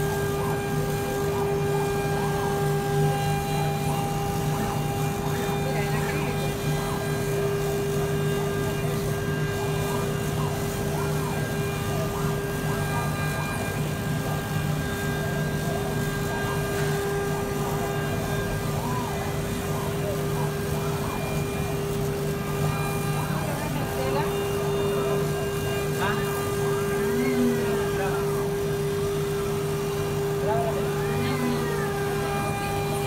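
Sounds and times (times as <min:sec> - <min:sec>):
faint voices: 0:00.0 - 0:33.0
laser cutter humming: 0:00.0 - 0:33.0.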